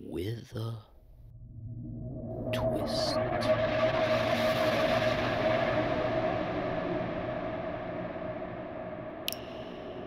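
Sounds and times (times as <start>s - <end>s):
rushing drone: 1.4s - 10.0s.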